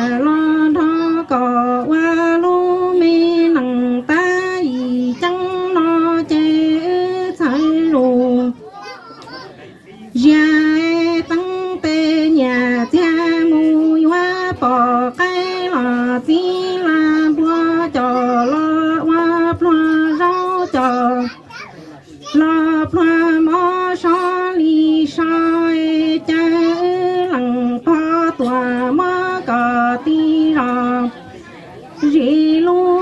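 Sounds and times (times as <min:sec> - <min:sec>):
woman singing into a microphone: 0:00.0 - 0:08.6, 0:10.1 - 0:21.4, 0:22.2 - 0:33.0.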